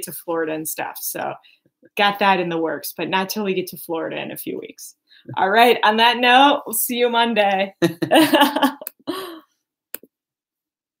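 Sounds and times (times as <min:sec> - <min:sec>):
person laughing breathily: 0:07.8 - 0:09.4.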